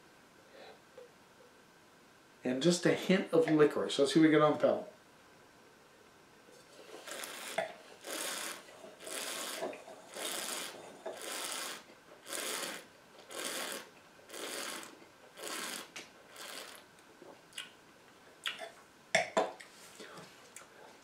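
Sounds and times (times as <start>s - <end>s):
airy slurps of wine: 6.9s - 16.8s.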